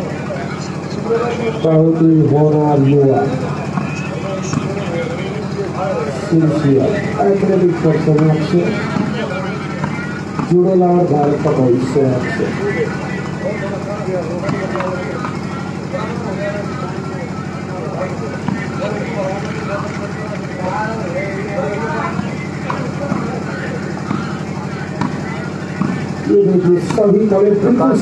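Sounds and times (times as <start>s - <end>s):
people calling and talking: 0.0s - 28.0s
steady low hum: 0.0s - 28.0s.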